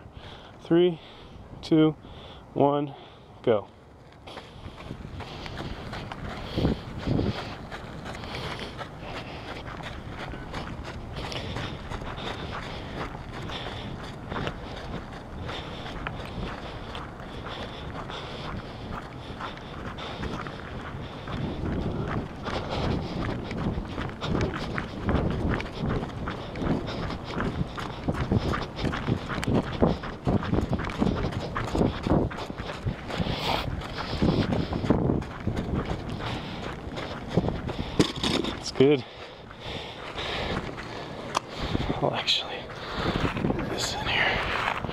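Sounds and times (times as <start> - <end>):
footsteps on gritty dirt: 0.0 - 44.9.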